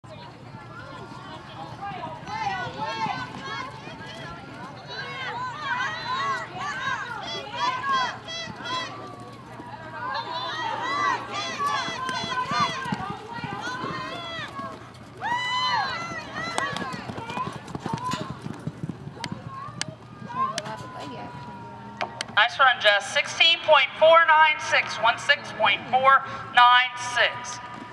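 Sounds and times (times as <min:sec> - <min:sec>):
horse hooves galloping on dirt: 0:01.6 - 0:21.0.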